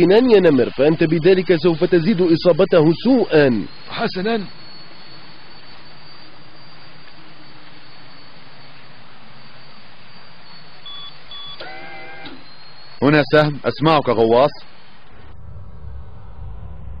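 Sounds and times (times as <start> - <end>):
short electronic beeps: 0.0 - 14.7
low hiss: 0.0 - 17.0
warbling electronic tone: 0.0 - 17.0.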